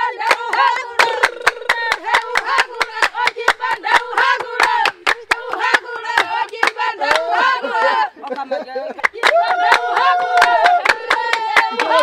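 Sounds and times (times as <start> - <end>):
women clapping in rhythm: 0.0 - 12.0
women singing and chanting: 0.0 - 12.0.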